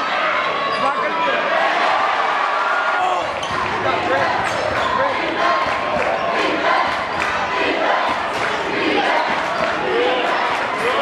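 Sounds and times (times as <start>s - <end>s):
crowd talking and shouting: 0.0s - 11.0s.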